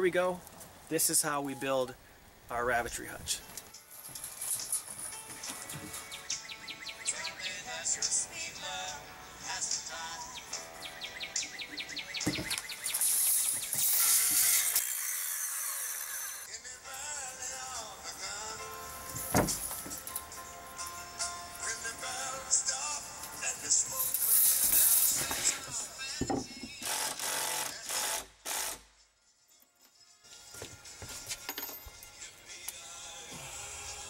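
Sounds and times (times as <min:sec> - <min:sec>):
faint background music: 0:00.0 - 0:13.3, 0:16.5 - 0:34.0
thump on wood: 0:12.2 - 0:12.6, 0:19.1 - 0:20.0, 0:26.2 - 0:26.7
cordless drill driving screws into wood: 0:12.3 - 0:16.5, 0:26.6 - 0:28.9.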